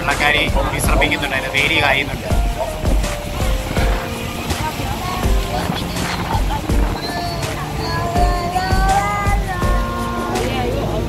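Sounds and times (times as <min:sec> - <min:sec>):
background music: 0:00.0 - 0:11.0
boat rumbling and buffeting: 0:00.0 - 0:11.0
voices: 0:00.0 - 0:11.0.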